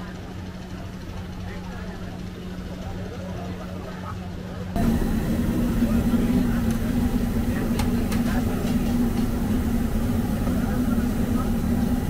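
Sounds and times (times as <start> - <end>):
machine hum: 4.8 - 12.0.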